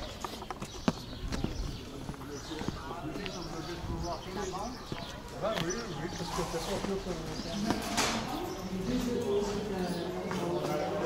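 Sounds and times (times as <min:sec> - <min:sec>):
footsteps on stone: 0:00.0 - 0:11.0
people talking: 0:01.2 - 0:11.0.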